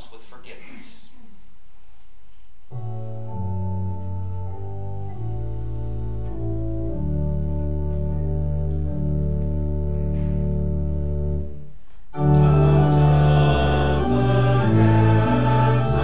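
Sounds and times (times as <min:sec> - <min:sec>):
organ playing held chords: 0:02.7 - 0:16.0.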